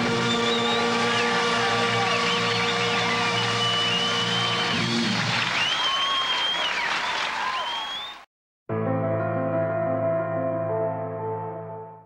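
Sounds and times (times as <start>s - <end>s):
audience applause: 0.0s - 8.2s.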